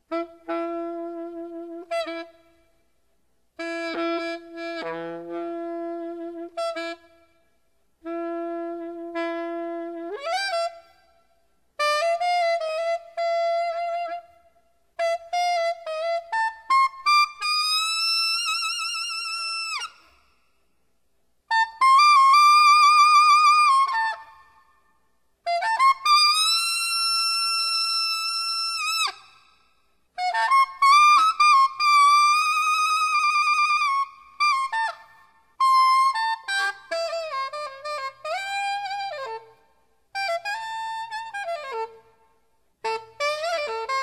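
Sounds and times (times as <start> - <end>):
alto saxophone melody: 0.0 - 2.8, 3.5 - 11.2, 11.8 - 20.2, 21.5 - 24.6, 25.4 - 44.0.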